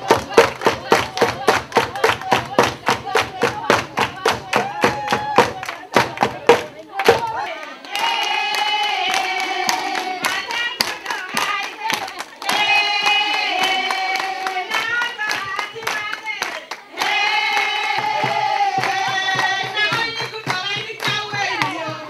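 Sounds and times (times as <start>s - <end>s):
crowd rhythmic hand clapping: 0.0s - 22.0s
woman singing: 0.0s - 22.0s.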